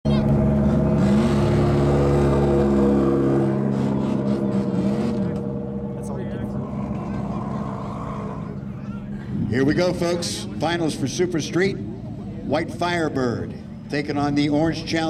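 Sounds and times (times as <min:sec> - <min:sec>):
drag car engines revving: 0:00.1 - 0:15.0.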